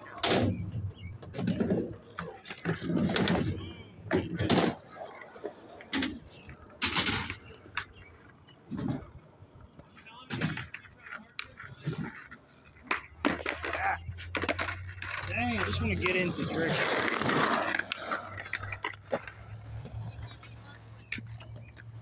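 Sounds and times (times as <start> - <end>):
skateboard wheels rolling on concrete: 0.0 - 22.0
skateboards clacking on concrete: 0.0 - 22.0.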